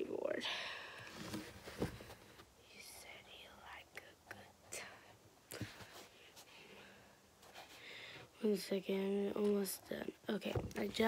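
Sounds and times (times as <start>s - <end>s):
faint whispering: 2.6s - 5.8s.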